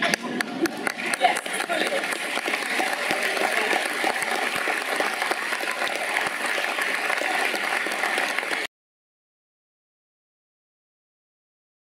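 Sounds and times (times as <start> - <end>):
large audience applauding: 0.0 - 8.7.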